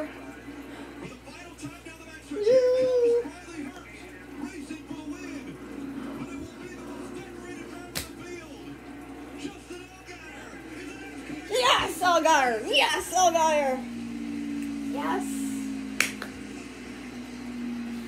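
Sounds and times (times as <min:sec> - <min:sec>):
faint commentator voice: 0:00.0 - 0:14.0, 0:14.8 - 0:17.4
steady drone: 0:04.1 - 0:18.0.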